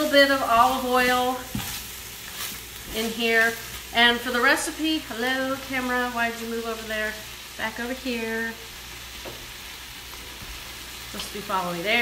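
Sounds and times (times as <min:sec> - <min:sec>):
onions sizzling in oil: 0:00.0 - 0:12.0.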